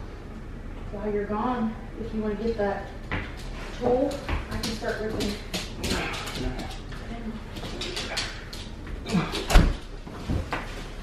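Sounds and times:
armchair shuffling and knocks: 8.9s - 11.0s.

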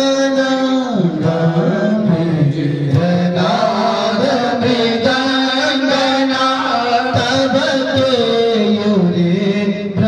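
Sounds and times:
men chanting into microphones: 0.0s - 10.0s.

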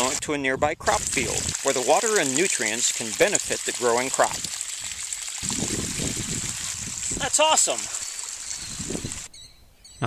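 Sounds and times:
water gushing from hose onto soil: 0.0s - 0.2s, 0.8s - 9.3s.

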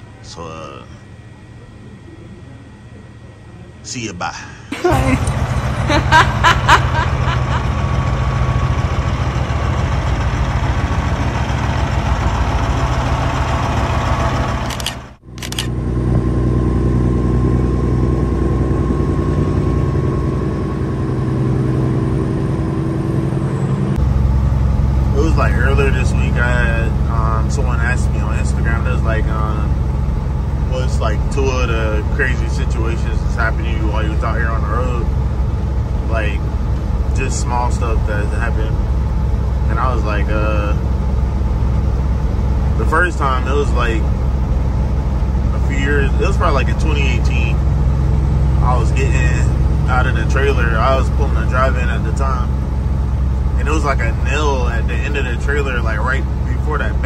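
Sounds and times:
truck diesel engine running: 4.8s - 57.0s.

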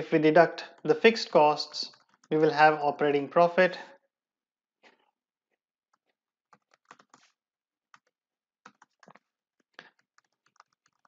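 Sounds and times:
keyboard typing: 1.9s - 2.7s, 5.9s - 11.0s.

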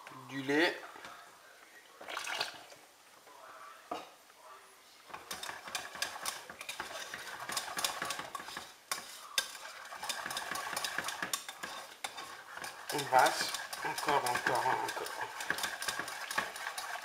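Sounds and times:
whisk scraping metal pan: 5.1s - 17.0s.

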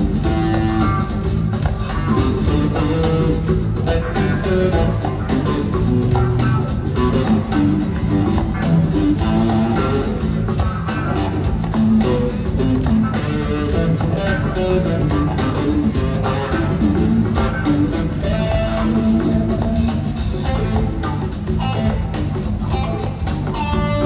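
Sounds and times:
bass guitar: 0.0s - 24.0s
lead electric guitar: 0.0s - 24.0s
steady drum beat: 0.0s - 24.0s.

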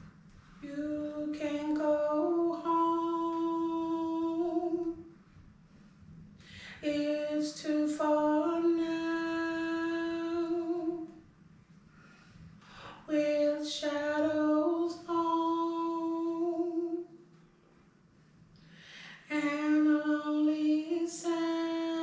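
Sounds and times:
woman singing unaccompanied: 0.6s - 5.1s, 6.7s - 11.2s, 12.8s - 17.1s, 19.2s - 22.0s.

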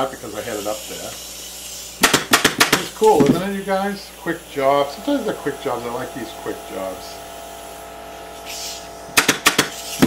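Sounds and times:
pneumatic staple gun firing: 1.0s - 3.5s, 8.4s - 10.0s.

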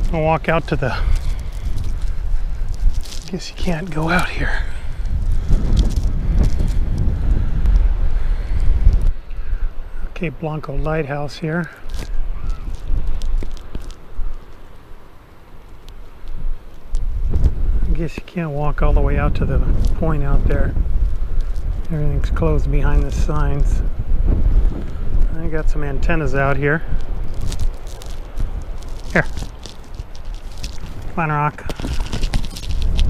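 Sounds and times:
small clicks and rustles: 0.0s - 9.3s, 11.4s - 23.7s, 26.4s - 33.0s
wind buffeting microphone: 0.0s - 33.0s.

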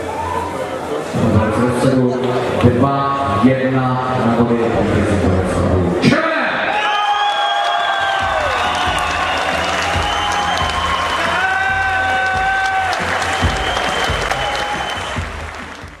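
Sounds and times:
audience applauding: 6.9s - 16.0s
music with low beat: 8.1s - 16.0s.

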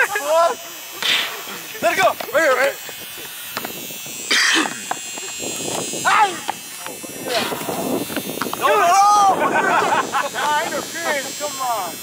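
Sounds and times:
young men shouting: 6.0s - 6.6s, 8.6s - 11.3s.

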